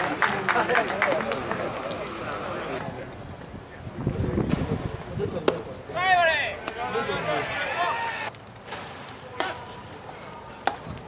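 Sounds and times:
spectators talking: 0.0s - 11.0s.

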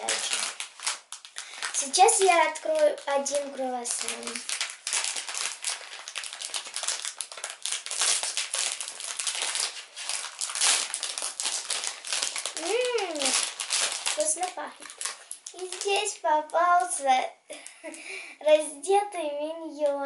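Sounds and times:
plastic wrapper crinkling: 0.0s - 17.1s.

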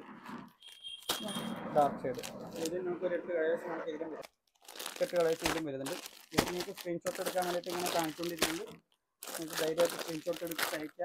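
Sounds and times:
plastic packaging crinkling: 4.3s - 11.0s
person talking: 4.9s - 11.0s.

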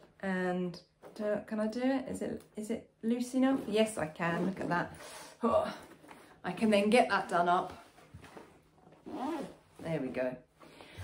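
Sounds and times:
zip being drawn closed: 9.0s - 9.7s.

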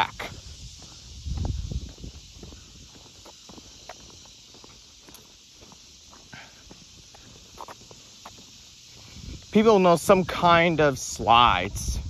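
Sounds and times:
steady hiss: 0.0s - 12.0s
footsteps on concrete: 0.1s - 9.6s.

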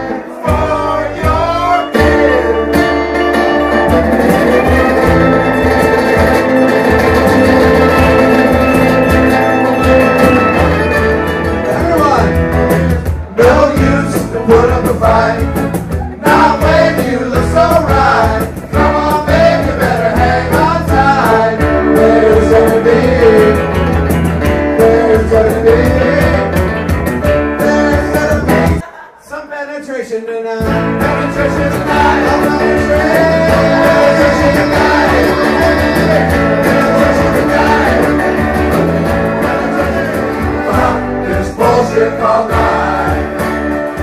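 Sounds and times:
several voices singing: 0.0s - 3.1s, 13.2s - 23.8s, 24.5s - 26.7s, 27.6s - 29.0s, 30.7s - 44.0s
strummed acoustic guitars: 0.0s - 29.0s, 30.6s - 44.0s.

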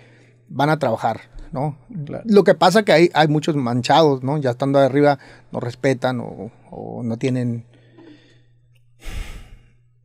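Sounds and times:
person exhaling heavily: 9.0s - 9.8s.

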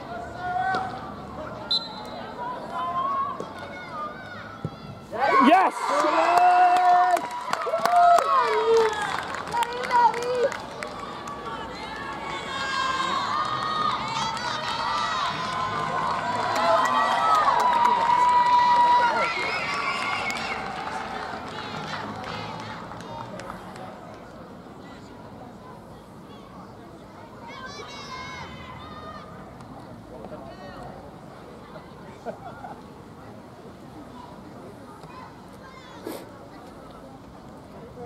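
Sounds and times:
crowd chatter: 0.0s - 38.0s
spectators cheering and shouting: 2.2s - 23.2s.

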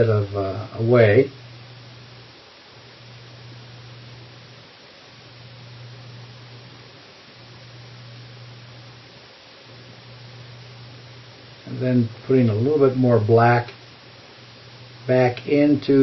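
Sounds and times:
low hum: 0.0s - 16.0s
steady hiss: 0.0s - 16.0s.

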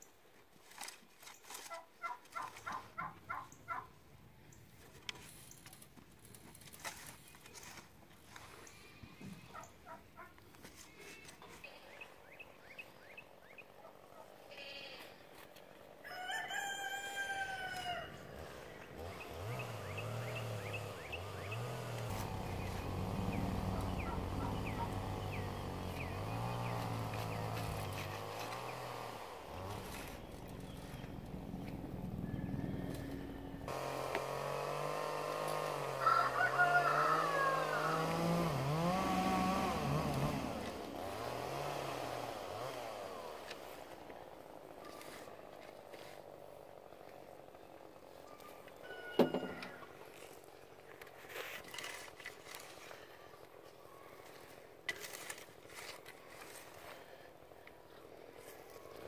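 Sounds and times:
rooster crowing: 16.0s - 18.4s, 35.8s - 38.6s.

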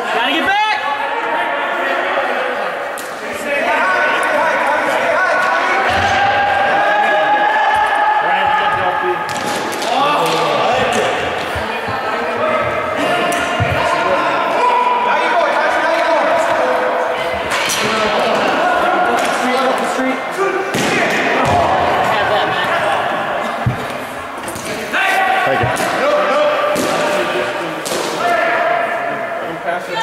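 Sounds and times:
players shouting in echoing rink: 0.0s - 30.0s.

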